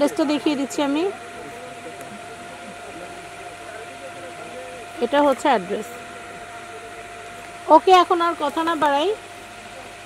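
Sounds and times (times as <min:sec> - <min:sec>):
faint distant voices: 0:00.0 - 0:10.0
thin steady hum: 0:00.0 - 0:10.0.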